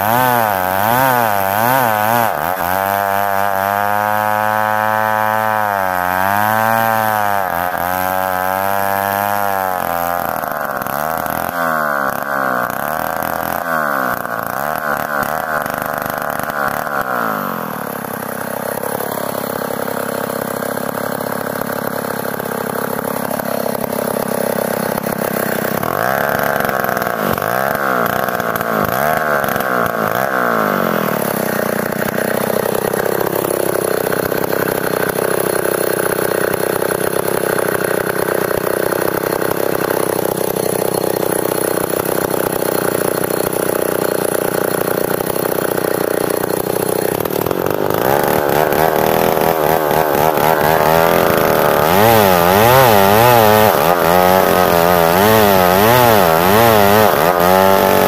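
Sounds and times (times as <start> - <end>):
chainsaw engine revving: 0.0 - 58.0.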